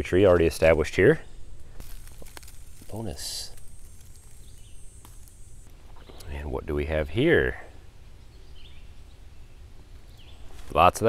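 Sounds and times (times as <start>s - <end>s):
faint high hiss: 0.4s - 11.0s.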